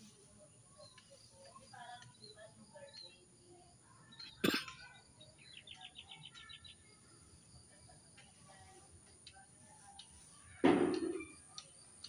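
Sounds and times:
bird chirping: 0:00.4 - 0:08.2.

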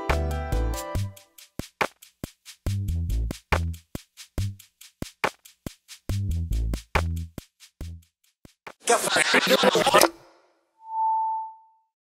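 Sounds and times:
synthesized tone: 0:10.8 - 0:11.8.

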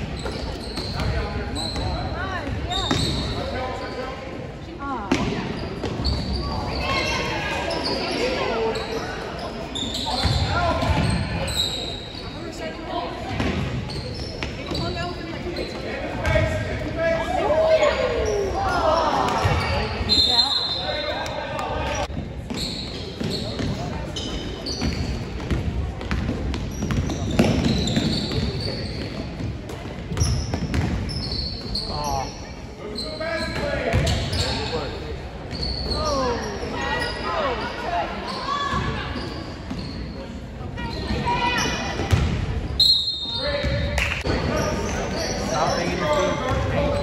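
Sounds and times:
sneaker squeaks: 0:00.0 - 0:04.4, 0:05.1 - 0:16.9, 0:17.7 - 0:47.0
echoing shouts and voices: 0:00.8 - 0:22.5, 0:31.7 - 0:47.0.

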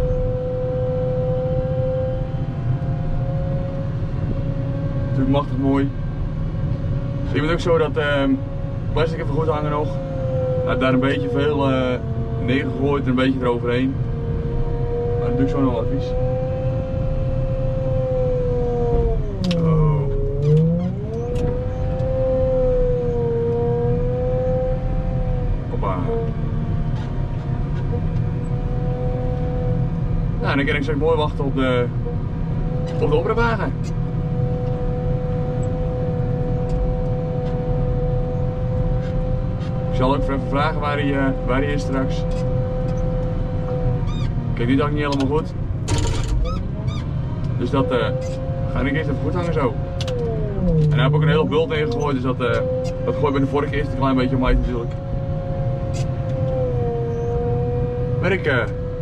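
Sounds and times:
engine rumble: 0:00.0 - 0:59.0
wheel loader engine whining: 0:18.1 - 0:24.5, 0:42.2 - 0:58.1
high whine: 0:49.2 - 0:52.5.

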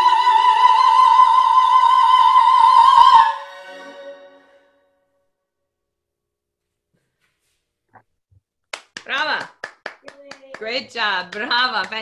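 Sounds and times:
person clapping hands: 0:08.7 - 0:12.0.

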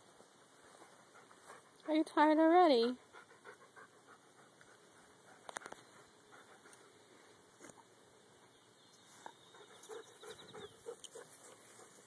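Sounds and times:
dog panting: 0:00.8 - 0:02.2, 0:02.8 - 0:07.1, 0:09.2 - 0:12.0.

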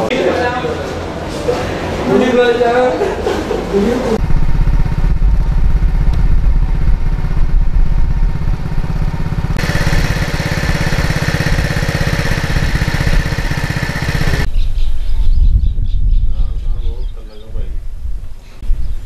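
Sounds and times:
harsh high whine: 0:04.2 - 0:14.5
small engine running: 0:04.2 - 0:14.5.

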